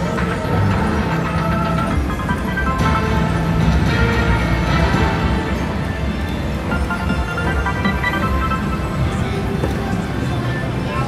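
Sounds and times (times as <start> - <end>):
slot machine game music: 0.0 - 10.9.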